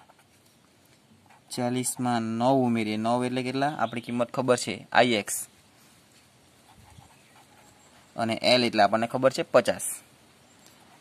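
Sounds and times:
pen writing on paper: 0.0 - 0.4, 1.2 - 2.1, 6.6 - 8.2, 10.7 - 11.0.

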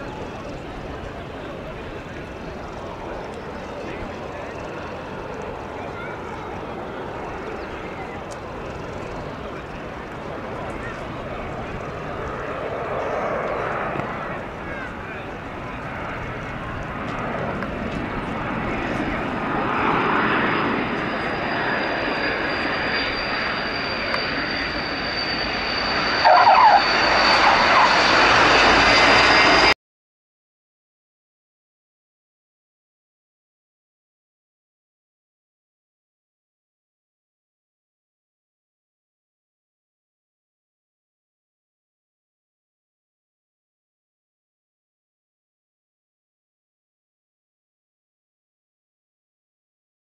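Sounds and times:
distant turboprop aircraft drone: 0.0 - 29.8.

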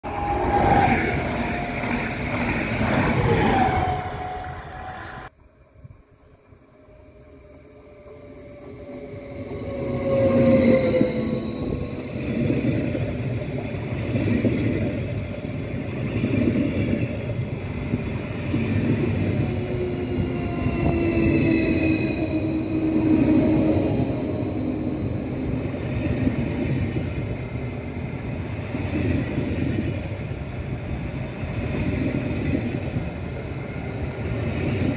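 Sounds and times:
electric trains passing: 0.0 - 34.9
wheels rumbling on rails: 6.8 - 34.9
whining tones sliding in pitch: 7.1 - 13.1, 18.8 - 26.7.

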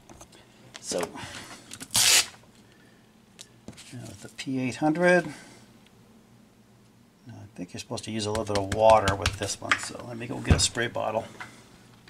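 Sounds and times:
hook-and-loop sanding disc ripping: 1.9 - 2.4.

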